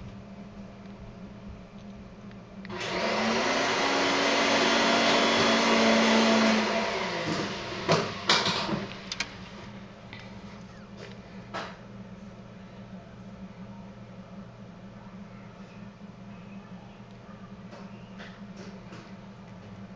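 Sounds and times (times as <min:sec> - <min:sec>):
appliance motor spinning: 0:02.7 - 0:09.9.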